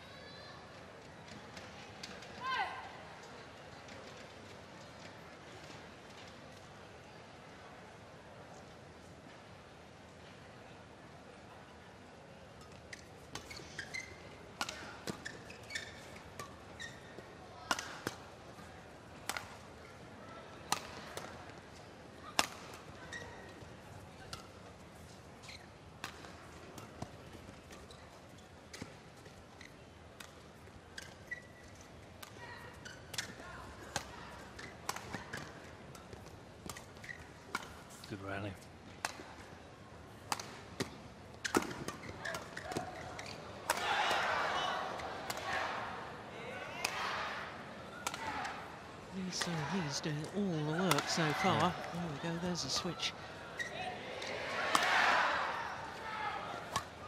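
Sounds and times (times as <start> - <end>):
faint arena background: 0.0 - 57.0
shoes squeaking on court: 12.6 - 17.3, 22.9 - 29.9, 30.6 - 38.2, 40.8 - 43.6, 49.2 - 54.4
rackets striking shuttlecock: 40.3 - 44.2, 50.2 - 51.9.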